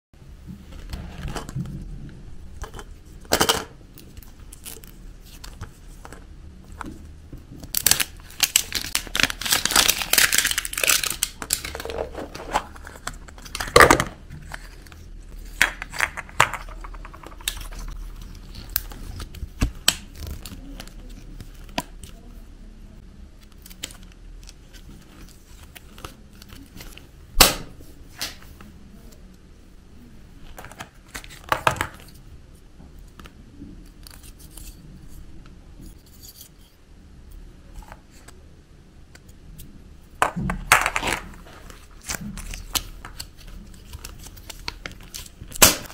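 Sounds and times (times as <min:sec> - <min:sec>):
plastic wrapper crinkling and tearing: 0:07.6 - 0:22.2, 0:40.7 - 0:45.9
plastic capsule snapping open: 0:40.2 - 0:41.4.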